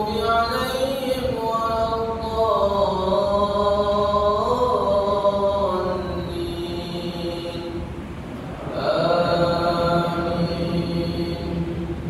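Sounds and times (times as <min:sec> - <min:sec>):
man chanting over loudspeakers: 0:00.0 - 0:07.9, 0:08.5 - 0:12.0.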